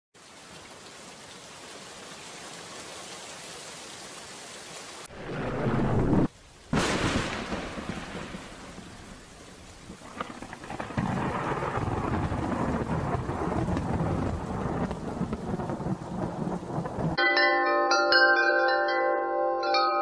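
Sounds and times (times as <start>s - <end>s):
steady rain: 0.2s - 17.2s
loud thunderclap: 5.1s - 9.2s, 9.9s - 17.2s
thunder rumbling: 5.1s - 17.2s.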